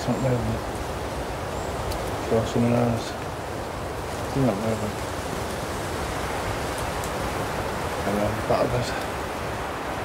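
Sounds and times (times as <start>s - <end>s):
steady rushing hiss: 0.0s - 10.0s.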